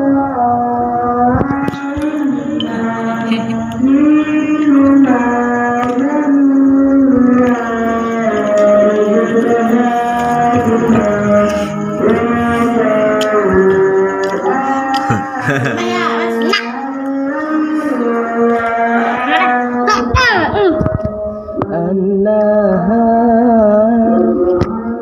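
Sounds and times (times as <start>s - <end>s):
person chanting in long notes: 0.0s - 20.2s, 20.8s - 25.0s.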